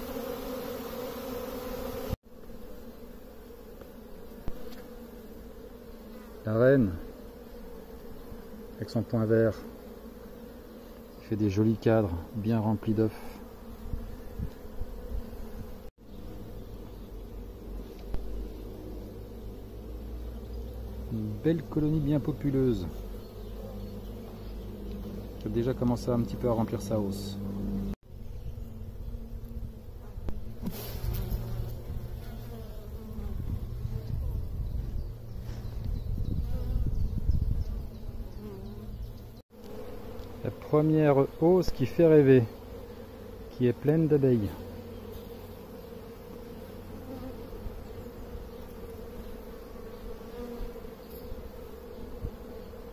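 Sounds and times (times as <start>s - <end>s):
bees buzzing: 0.0s - 52.9s.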